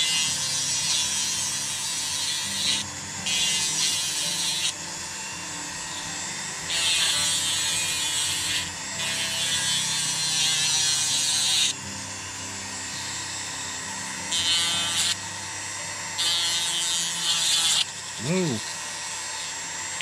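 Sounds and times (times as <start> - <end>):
rotary tool grinding wood: 0.0 - 20.0
rotary tool motor hum: 0.0 - 20.0.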